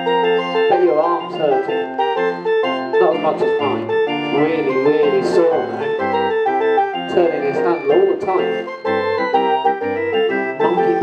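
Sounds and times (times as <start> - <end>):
barrel organ playing a tune: 0.0 - 11.0.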